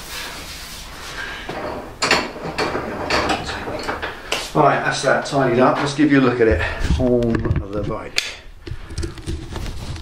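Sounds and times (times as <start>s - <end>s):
metal tools clattering: 1.6s - 4.3s.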